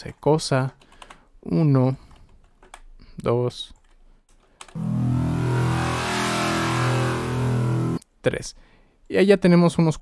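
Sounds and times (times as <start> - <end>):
low buzzing synth growl: 4.8 - 8.0.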